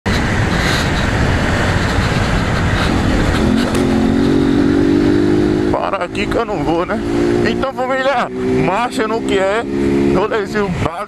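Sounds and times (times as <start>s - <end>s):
wind on microphone: 0.1s - 7.5s
motorcycle engine running: 0.1s - 10.7s.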